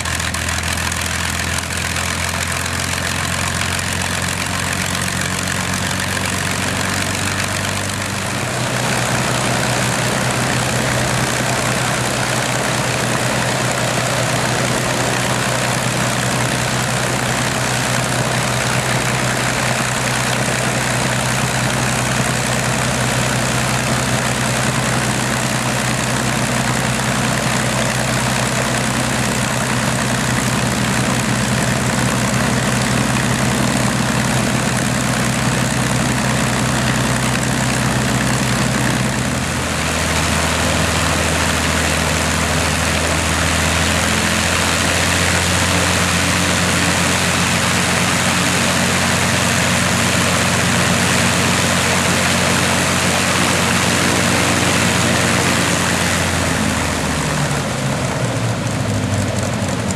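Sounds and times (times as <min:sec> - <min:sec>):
propeller plane engine idling: 0:00.0 - 0:59.9.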